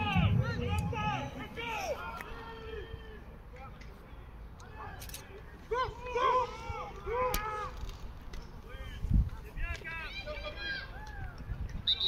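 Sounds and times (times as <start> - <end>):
people shouting: 0.0 - 2.9, 5.7 - 7.7.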